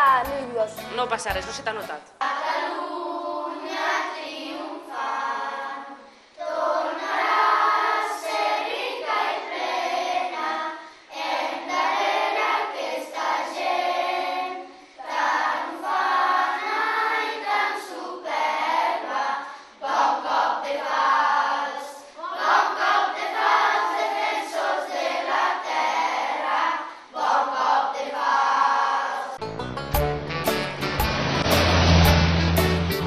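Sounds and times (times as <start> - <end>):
children's choir singing: 2.2 - 29.4.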